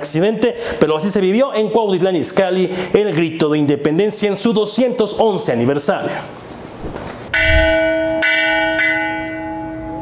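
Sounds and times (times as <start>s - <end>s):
large bell ringing: 7.3s - 10.0s.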